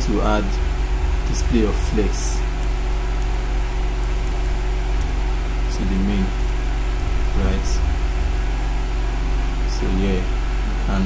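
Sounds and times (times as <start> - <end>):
steady low hum: 0.0 - 11.0
person speaking: 1.2 - 2.6, 5.6 - 6.5, 7.2 - 8.1.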